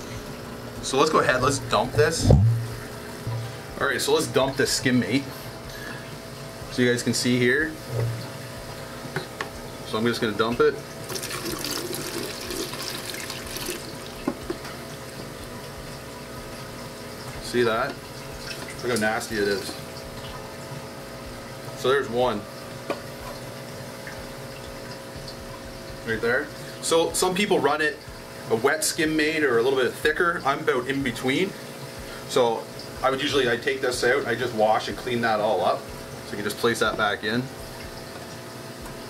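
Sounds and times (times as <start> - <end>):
aquarium pump hum and water: 0.0 - 39.0.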